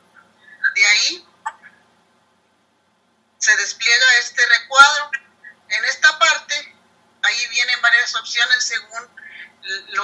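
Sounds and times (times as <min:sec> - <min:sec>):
woman talking through video call: 0:00.6 - 0:01.8.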